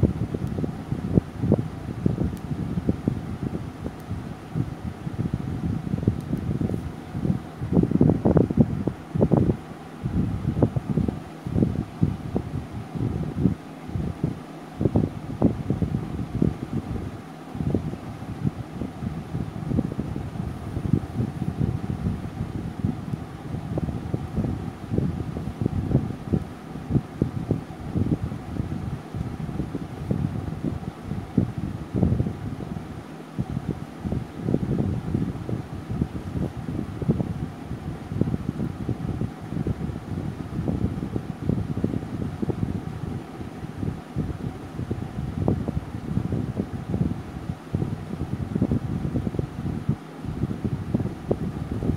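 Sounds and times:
air buffeting microphone: 0.0 - 51.9.

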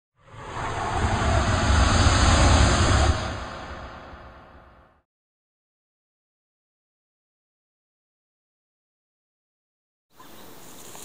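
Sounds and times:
rushing whoosh with deep rumble: 0.1 - 5.0.

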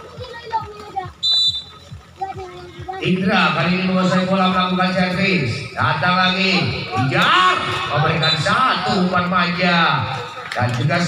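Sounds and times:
referee's whistle blast: 1.2 - 1.7, 8.1 - 8.9.

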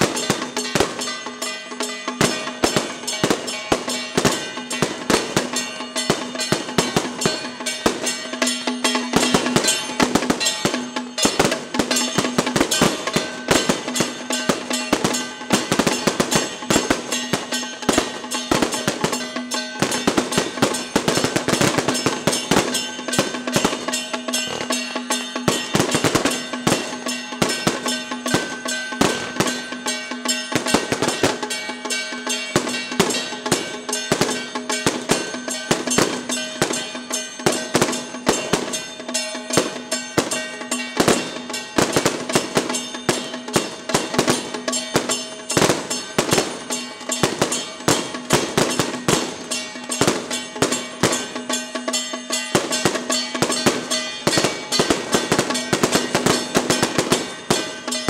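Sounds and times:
cymbals: 0.0 - 58.0
drums: 0.0 - 58.0
gongs: 0.0 - 58.0.

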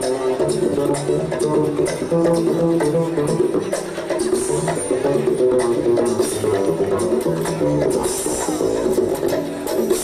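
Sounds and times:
upright bass pizzicato: 0.0 - 10.0.

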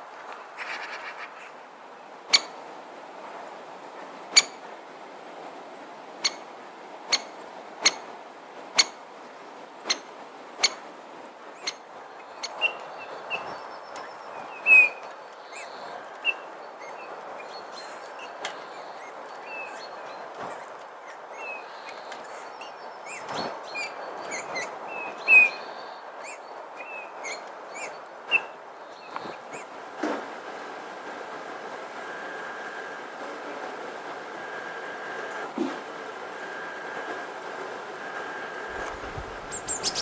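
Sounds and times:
steady outdoor hiss: 0.0 - 40.0
small birds chirping: 2.3 - 2.6, 11.6 - 29.8, 34.4 - 40.0.

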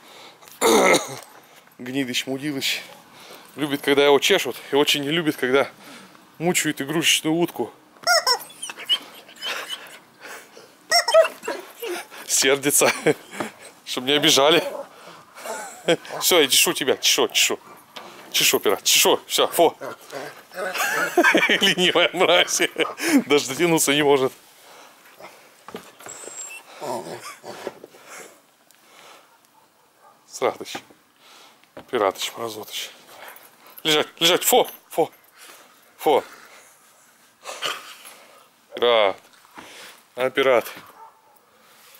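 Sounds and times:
rubber squeaky toy squeaking: 8.0 - 9.9, 10.9 - 11.9
dog growling: 19.6 - 21.1, 26.5 - 27.8.

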